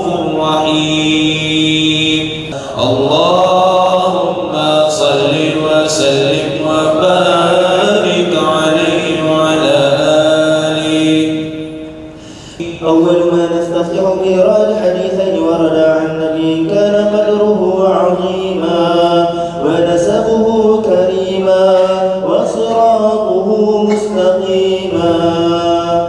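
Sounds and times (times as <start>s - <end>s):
man chanting through amplifier: 0.0s - 26.0s.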